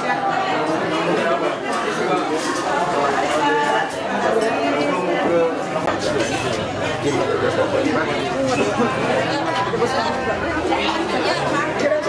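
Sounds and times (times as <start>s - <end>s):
overlapping chatter of men: 0.0s - 12.0s.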